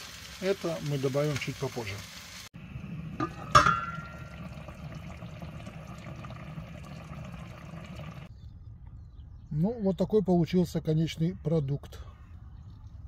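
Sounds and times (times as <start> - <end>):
stew bubbling in a pot: 0.0 - 8.3.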